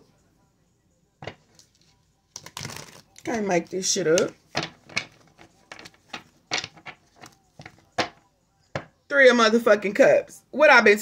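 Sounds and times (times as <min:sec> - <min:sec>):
cards being shuffled: 0:01.2 - 0:08.2.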